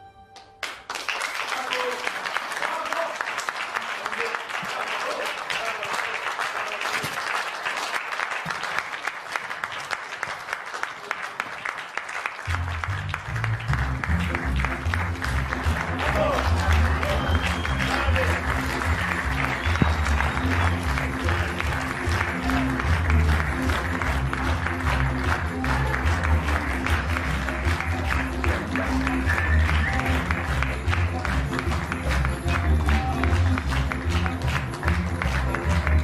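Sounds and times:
audience applauding: 0:00.4 - 0:36.0
music with low bass: 0:12.5 - 0:36.0.

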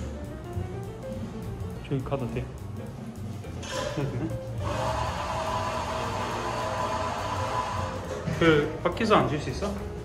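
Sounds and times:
background music: 0:00.0 - 0:10.0
steady rushing machine noise: 0:04.3 - 0:08.2.

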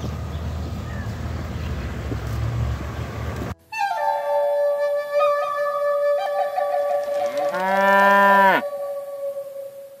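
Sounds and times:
flute music: 0:03.6 - 0:10.0
cow mooing: 0:07.4 - 0:08.7.

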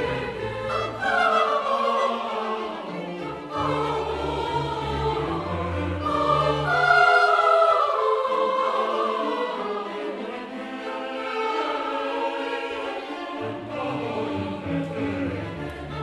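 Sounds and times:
choir singing long notes: 0:00.0 - 0:16.0.

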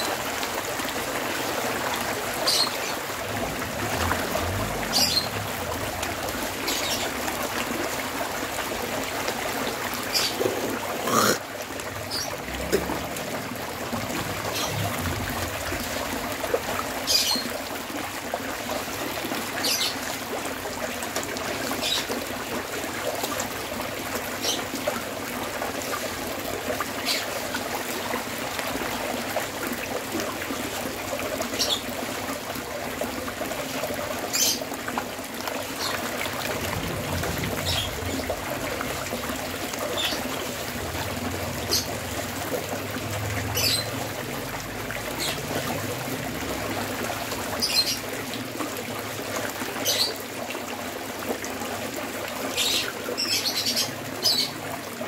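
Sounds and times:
fish churning and slapping water: 0:00.0 - 0:55.0.

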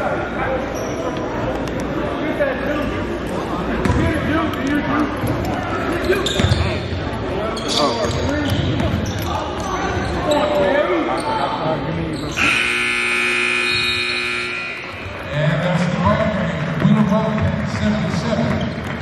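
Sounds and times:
players' voices: 0:00.0 - 0:19.0
scoreboard horn blast: 0:12.4 - 0:15.0.

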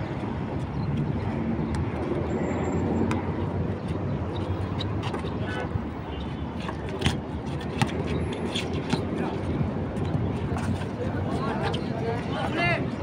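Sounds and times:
road traffic rumble: 0:00.0 - 0:13.0.

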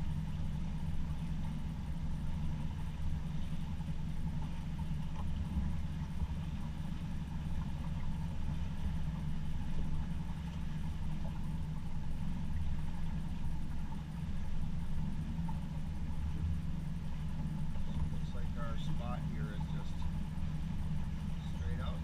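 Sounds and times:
boat engine running: 0:00.0 - 0:22.0.

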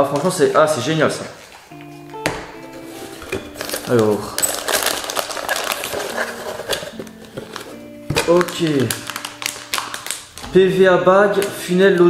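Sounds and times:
background music with held notes: 0:00.0 - 0:12.0
plastic bag crinkling: 0:03.0 - 0:11.7.

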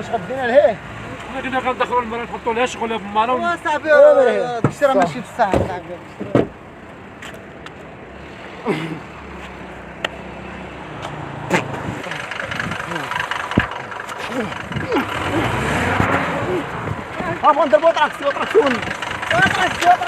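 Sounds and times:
people talking: 0:00.0 - 0:06.5, 0:12.0 - 0:13.3, 0:14.2 - 0:20.0
vehicle engine running: 0:04.8 - 0:20.0.

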